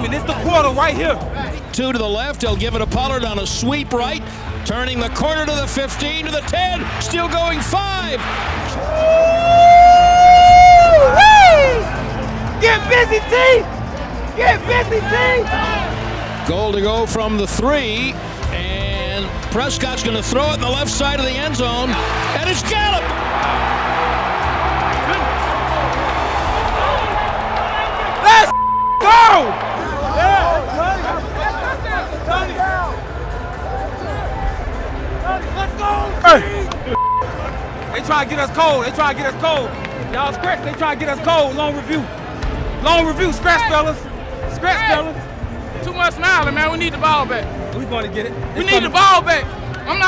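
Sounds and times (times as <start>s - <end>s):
men shouting and cheering: 3.9s - 50.0s
man yelling: 28.2s - 29.5s.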